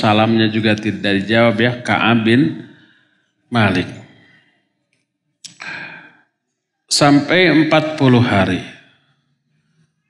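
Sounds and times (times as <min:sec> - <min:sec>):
man's breathy exhale: 0:05.6 - 0:06.2.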